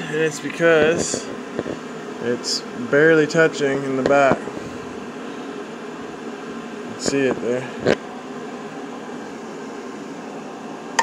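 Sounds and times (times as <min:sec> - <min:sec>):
mechanical hum and hiss: 0:00.0 - 0:11.0.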